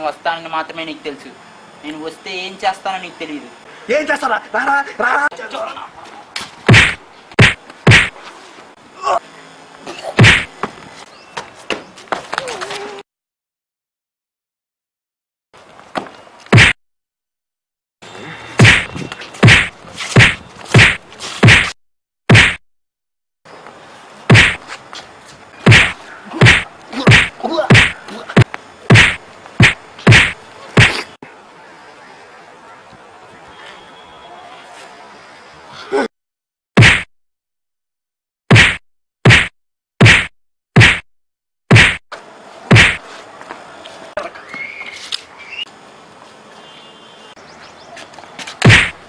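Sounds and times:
punch and slap sound effects: 6.7s - 8.2s, 10.2s - 10.5s, 16.5s - 16.8s, 18.6s - 22.6s, 24.3s - 24.6s, 25.6s - 31.1s, 36.8s - 37.1s, 38.5s - 41.1s, 41.7s - 42.0s, 42.7s - 43.0s, 48.6s - 49.0s.

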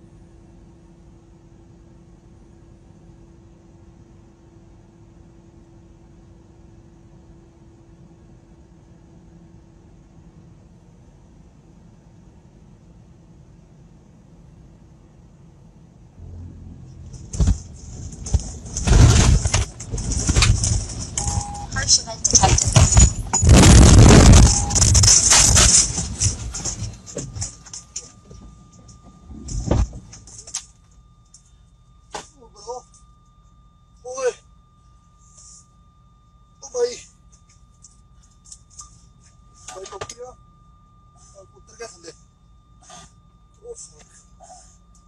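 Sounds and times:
thin steady tone: 15.9s - 45.0s
truck cab jolting and rattling: 16.2s - 30.7s.

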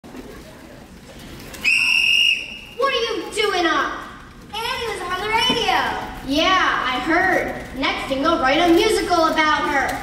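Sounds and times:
faint murmur of voices: 0.0s - 7.8s
shrill whistle blast: 1.6s - 2.8s.

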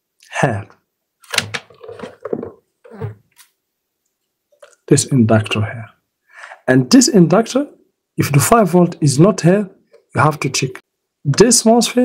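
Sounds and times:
man speaking: 0.2s - 0.8s, 4.7s - 6.0s, 6.6s - 12.0s.

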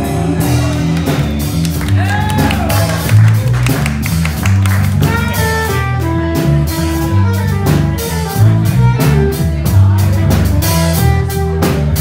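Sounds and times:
drum hits: 0.0s - 8.1s
bass line: 0.0s - 12.0s
jazz band playing: 0.0s - 12.0s
audience clapping: 0.6s - 5.7s.

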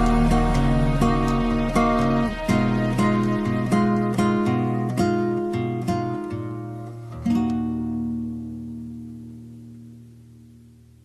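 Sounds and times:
acoustic guitar plucking: 0.0s - 11.0s.

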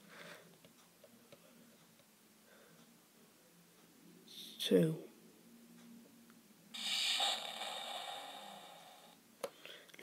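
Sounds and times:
buzzy hissing electronic tone: 6.8s - 9.2s.

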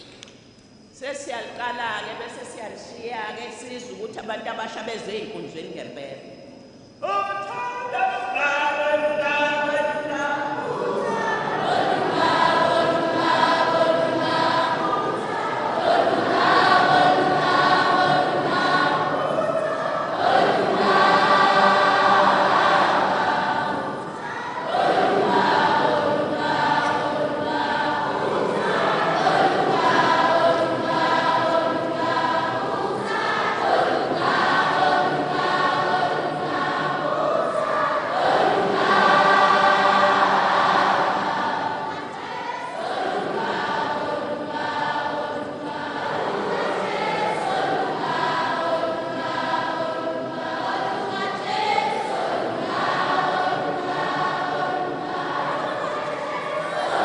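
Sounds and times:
children singing a hymn: 7.0s - 57.0s.

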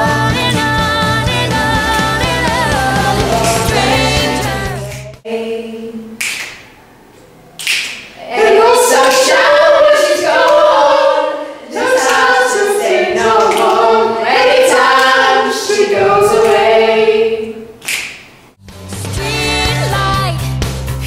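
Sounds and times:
group singing a cappella: 0.0s - 6.2s, 8.2s - 17.8s.

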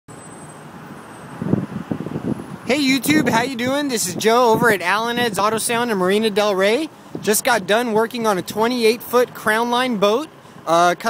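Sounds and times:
street traffic noise: 0.1s - 11.0s
low rumbles: 0.8s - 11.0s.

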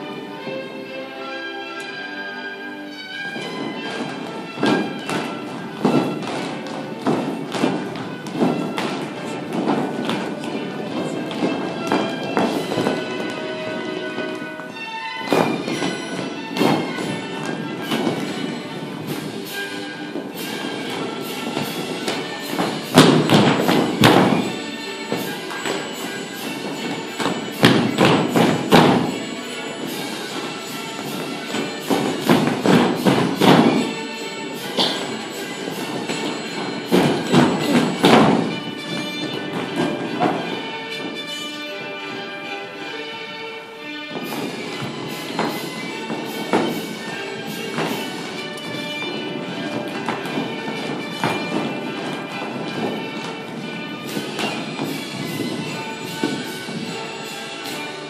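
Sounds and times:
folk dance music: 0.0s - 58.0s
heeled shoes stamping on floor: 3.4s - 19.5s, 20.1s - 41.7s, 44.2s - 57.2s.

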